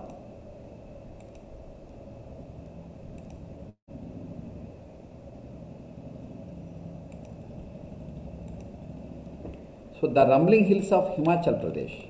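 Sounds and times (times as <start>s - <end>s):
low room noise rumble: 0.0s - 12.0s
faint clicks: 7.1s - 7.4s.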